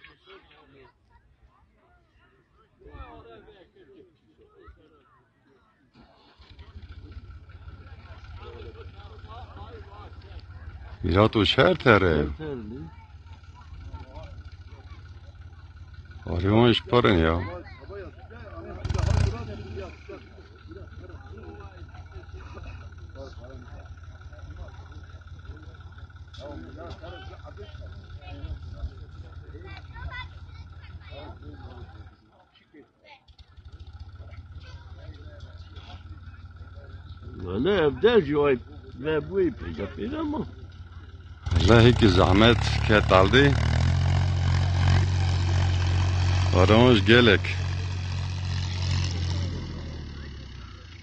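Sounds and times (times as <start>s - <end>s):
tractor engine running: 6.0s - 32.5s, 33.1s - 51.0s
men talking: 8.0s - 12.9s, 16.2s - 29.6s, 35.4s - 51.0s.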